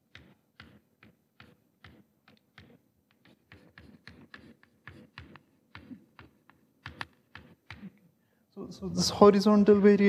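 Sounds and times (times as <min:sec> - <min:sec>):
chalk tapping and scraping on blackboard: 0:00.0 - 0:08.0.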